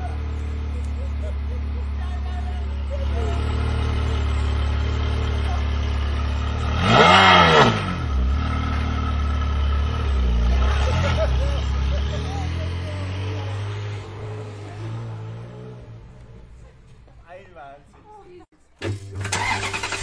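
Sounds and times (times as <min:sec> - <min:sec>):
engine throttle blips: 0:00.0 - 0:17.3, 0:18.8 - 0:20.0
car engine idling: 0:00.0 - 0:20.0.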